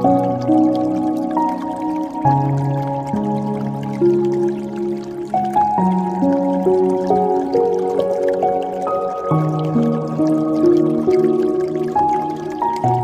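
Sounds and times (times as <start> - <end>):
dripping water: 0.0 - 13.0
slow calm piano music: 0.0 - 13.0.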